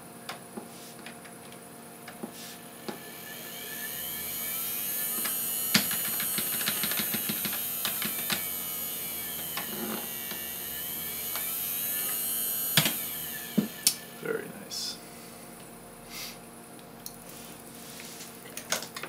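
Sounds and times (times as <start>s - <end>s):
electric motor whine: 2.1s - 16.0s.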